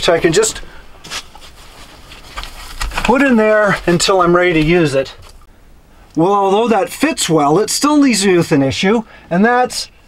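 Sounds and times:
foam scraping and rustling: 0:00.3 - 0:05.1.

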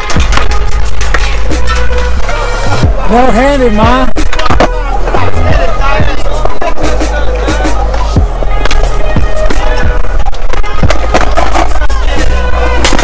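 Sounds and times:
skateboards clacking on concrete: 0:00.0 - 0:01.8, 0:10.6 - 0:13.0
music with heavy bass: 0:00.0 - 0:13.0
person's voice: 0:02.9 - 0:04.2.

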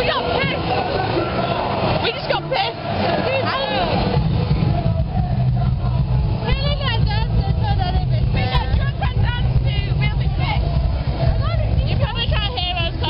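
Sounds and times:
people talking: 0:00.0 - 0:13.0
low rumble: 0:03.9 - 0:13.0.

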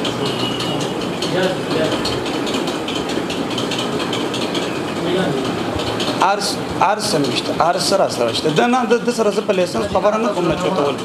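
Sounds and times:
steady noisy background: 0:00.0 - 0:11.0.

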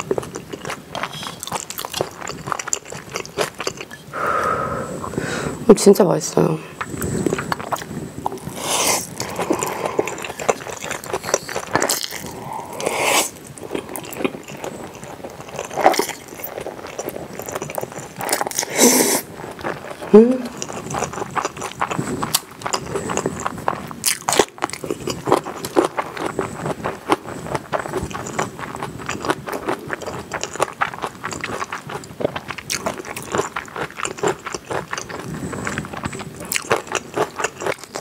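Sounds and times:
wet chewing: 0:00.0 - 0:04.2, 0:06.8 - 0:38.0
noodles being slurped: 0:06.9 - 0:38.0
person humming: 0:20.1 - 0:20.5.

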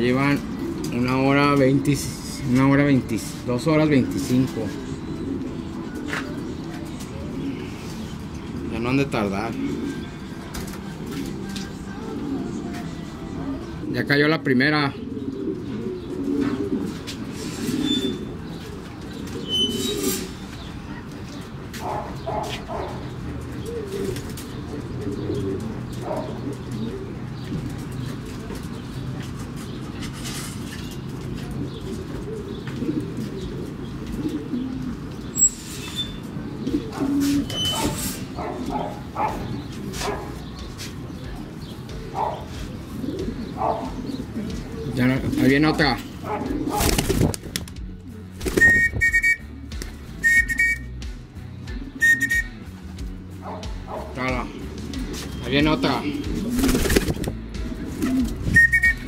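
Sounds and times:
pigeons cooing: 0:00.0 - 0:59.0.

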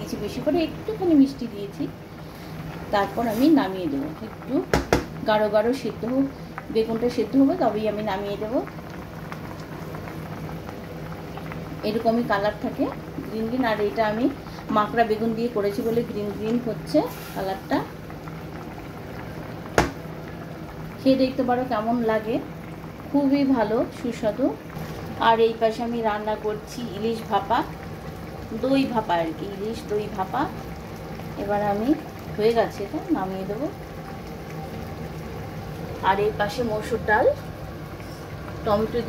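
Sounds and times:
curry bubbling in a pot: 0:00.0 - 0:39.0
low kitchen hum: 0:00.0 - 0:39.0.

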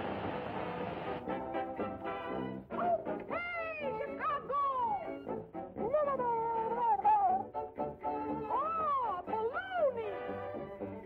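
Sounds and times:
band music: 0:00.0 - 0:11.0.

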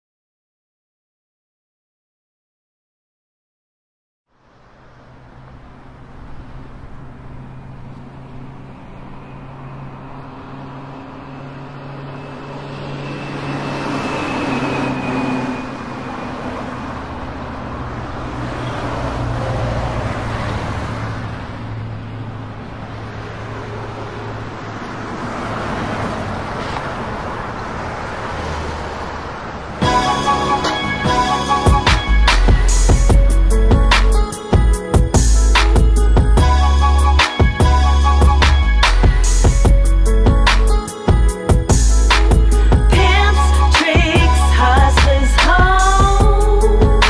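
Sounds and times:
road traffic hum: 0:04.3 - 0:47.0
street noise: 0:04.3 - 0:47.0.

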